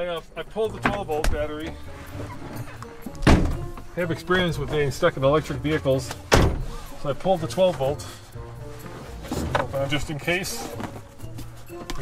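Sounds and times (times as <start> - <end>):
dull thunk inside car: 3.2 - 3.9, 6.3 - 6.8.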